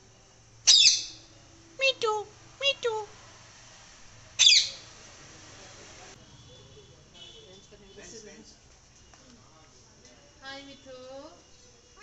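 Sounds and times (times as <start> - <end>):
parakeet squawk: 0.7 - 1.2, 4.4 - 4.9.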